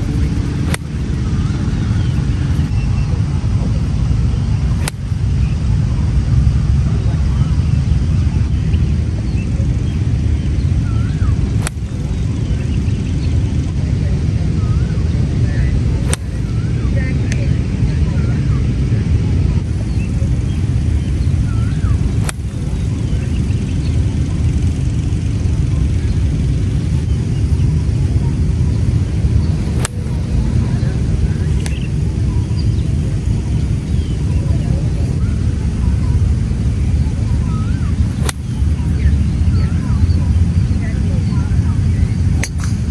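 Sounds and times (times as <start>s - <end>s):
golf club striking ball: 0.0s - 2.8s, 4.6s - 5.6s, 11.0s - 12.6s, 16.0s - 16.8s, 21.5s - 23.3s, 29.5s - 30.4s, 38.0s - 39.2s
birds chirping: 0.0s - 18.8s, 19.4s - 42.9s
wind rumble on microphone: 0.0s - 42.9s.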